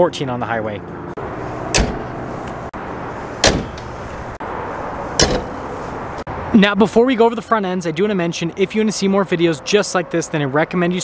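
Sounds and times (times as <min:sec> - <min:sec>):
steady background noise: 0:01.0 - 0:06.8
truck hood slamming shut: 0:01.7 - 0:02.1, 0:03.4 - 0:03.9, 0:05.2 - 0:05.6.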